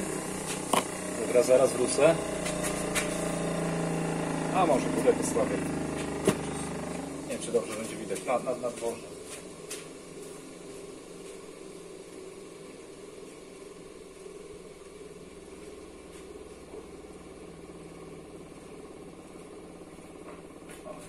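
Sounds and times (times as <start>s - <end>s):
bench polisher motor humming: 0.0s - 8.4s.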